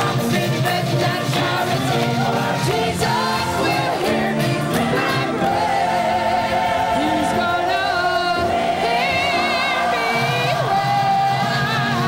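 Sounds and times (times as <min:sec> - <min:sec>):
choir singing held notes: 0:00.0 - 0:12.0.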